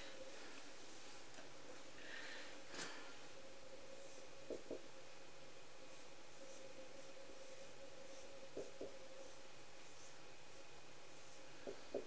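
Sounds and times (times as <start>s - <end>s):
marker tapping on whiteboard: 4.5s - 4.8s, 11.6s - 12.0s.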